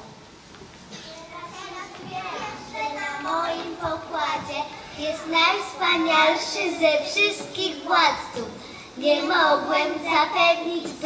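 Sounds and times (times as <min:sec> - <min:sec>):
children talking quietly: 0:00.0 - 0:11.0.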